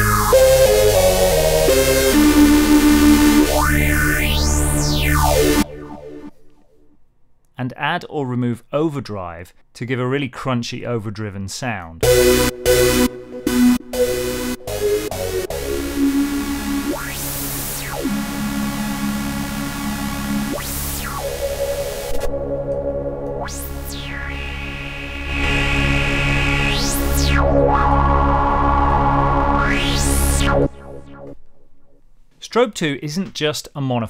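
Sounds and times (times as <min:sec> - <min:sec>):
synthesizer filter sweep: 0:00.0 - 0:07.0, 0:12.0 - 0:32.0.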